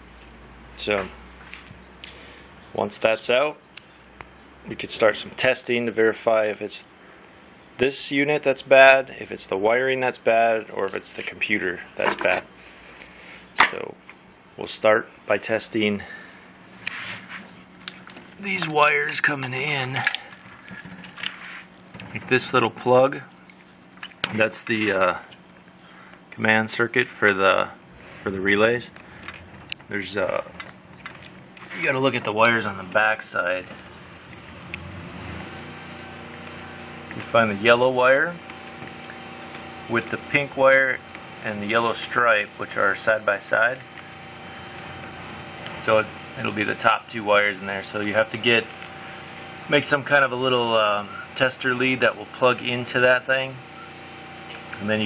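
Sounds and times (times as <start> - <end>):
background hum: 8.6 - 55.0
man speaking: 12.0 - 12.5, 18.4 - 20.3, 31.7 - 32.8.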